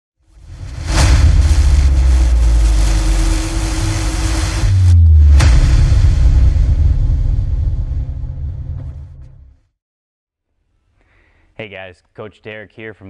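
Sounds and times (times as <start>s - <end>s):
deep low rumble: 0.3s - 9.7s
sharp hit: 0.4s - 9.6s.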